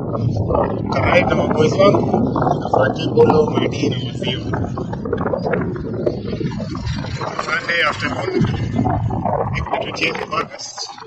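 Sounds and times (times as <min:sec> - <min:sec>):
wind rumble on microphone: 0:00.0 - 0:11.0
person's voice: 0:00.6 - 0:02.1, 0:02.8 - 0:04.6, 0:07.4 - 0:08.6, 0:09.6 - 0:11.0.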